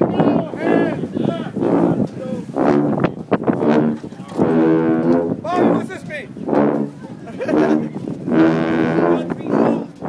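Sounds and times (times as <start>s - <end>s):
people shouting and cheering: 0.0s - 2.5s
sousaphones low held notes: 0.0s - 10.0s.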